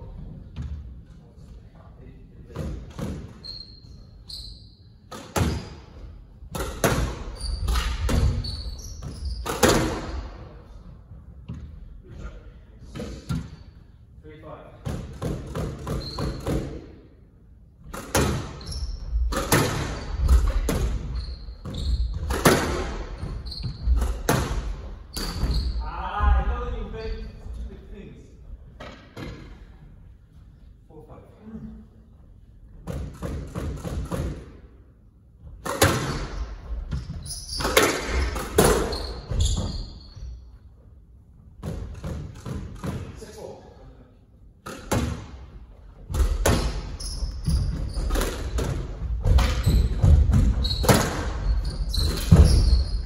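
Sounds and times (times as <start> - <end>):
squash ball hits echoing: 5.1 - 10.4, 14.8 - 17.0, 17.8 - 25.7, 32.8 - 34.6, 35.6 - 39.7, 41.6 - 43.2, 44.6 - 53.0
shoes squeaking on wooden floor: 7.2 - 9.8, 19.9 - 25.9, 36.4 - 40.6, 46.2 - 53.0
ball bouncing on wooden floor: 46.1 - 53.0.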